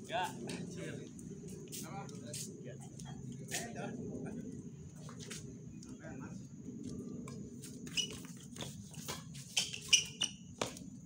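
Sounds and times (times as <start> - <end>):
rubber soles squeaking on court: 7.8 - 10.8.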